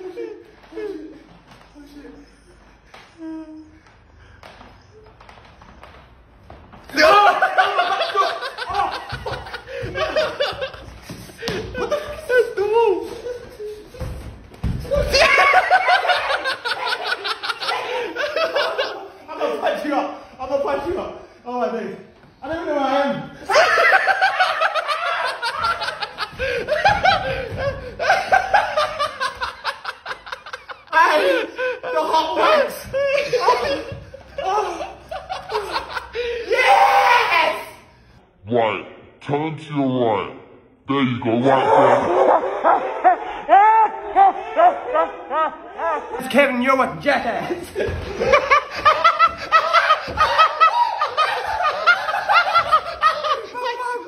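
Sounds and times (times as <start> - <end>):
people laughing: 0.0 - 5.2, 6.8 - 21.4, 22.7 - 37.5, 41.4 - 54.0.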